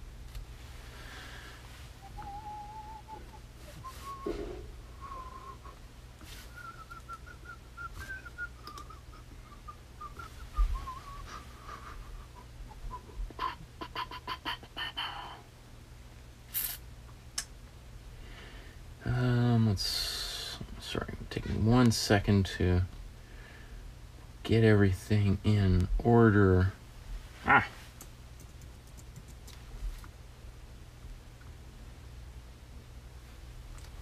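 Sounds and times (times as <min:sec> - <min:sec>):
person softly whistling: 0:02.0 - 0:13.2
sharp clicks: 0:08.6 - 0:08.9.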